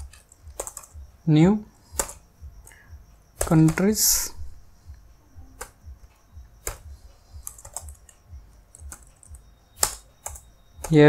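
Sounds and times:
computer keyboard typing: 0.0s - 4.4s, 5.5s - 11.0s.

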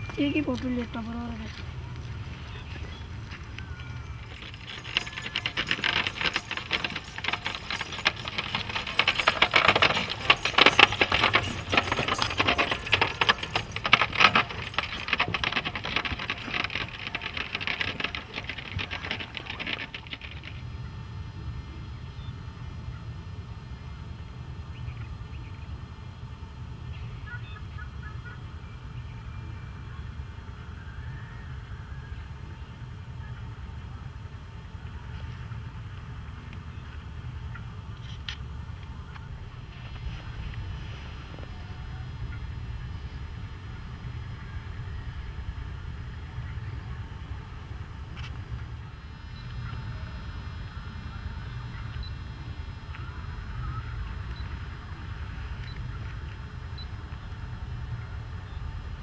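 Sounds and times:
low steady hum: 0.0s - 59.0s
harness jingling and rattling: 3.4s - 20.7s.

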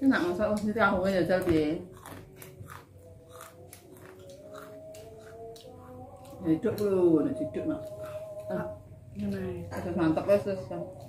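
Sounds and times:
chewing: 0.4s - 9.5s.

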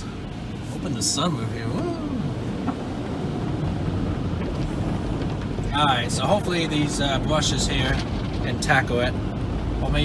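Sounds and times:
low rumble: 0.0s - 10.0s.

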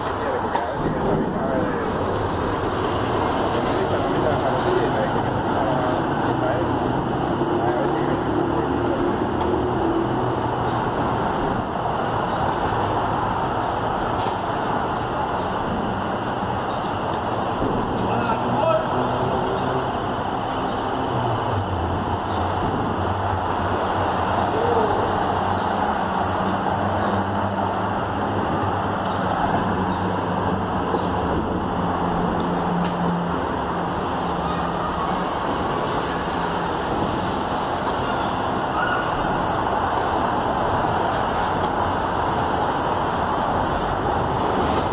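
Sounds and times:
city traffic: 0.0s - 44.9s
vehicle engines passing: 0.0s - 44.9s.

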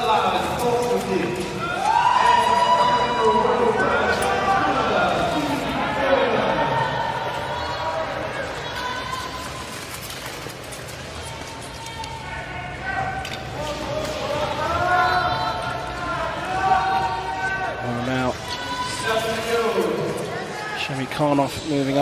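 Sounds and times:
speed skating arena sound: 0.0s - 22.0s.

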